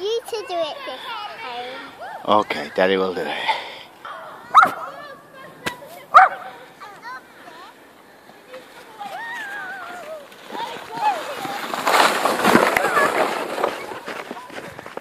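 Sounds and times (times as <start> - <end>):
plastic sled sliding over snow: 4.9 - 15.0.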